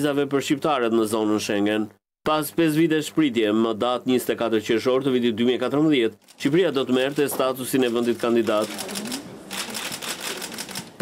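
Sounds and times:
camera shutters clicking: 8.4 - 10.9.

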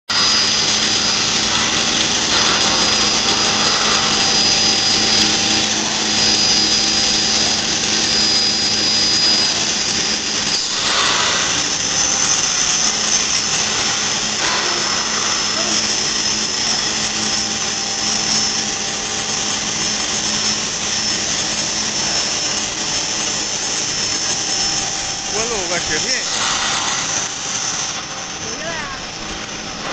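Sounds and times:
pipe mill machine running: 0.1 - 29.9.

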